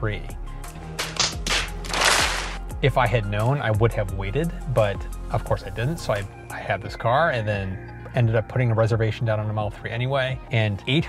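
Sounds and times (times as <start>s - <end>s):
background music: 0.0s - 11.0s
hands slapping foreheads: 0.8s - 2.6s.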